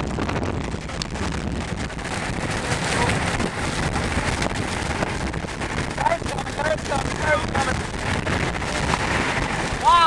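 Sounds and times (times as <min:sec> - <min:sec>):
rain beating on car: 0:00.0 - 0:10.0
road noise: 0:00.0 - 0:10.0
storm wind: 0:00.0 - 0:10.0.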